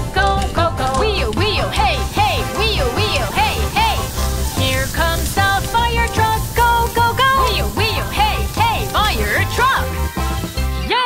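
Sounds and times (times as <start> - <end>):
person singing children's song: 0.0 - 11.0.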